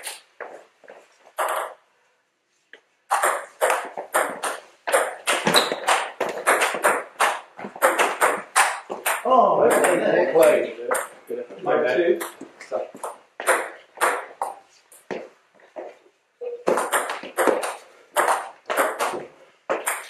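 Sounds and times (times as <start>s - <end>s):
person speaking: 9.0s - 13.2s.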